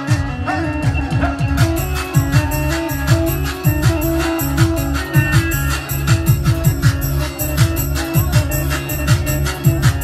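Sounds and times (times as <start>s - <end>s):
electronic drum beat: 0.0s - 10.0s
keyboard music: 0.0s - 10.0s.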